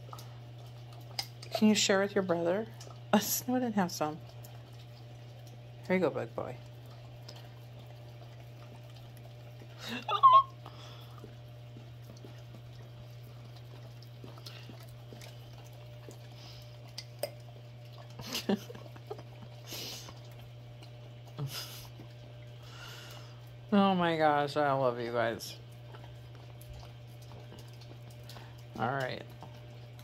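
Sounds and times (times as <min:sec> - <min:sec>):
dogs licking wetly: 0:00.0 - 0:30.0.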